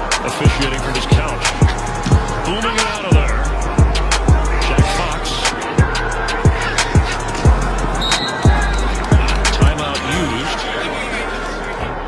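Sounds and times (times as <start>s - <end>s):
fast hi-hats: 0.0s - 10.4s.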